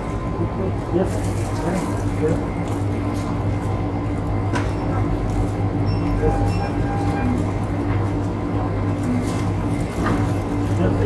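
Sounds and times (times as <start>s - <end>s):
shop background hum: 0.0s - 11.0s.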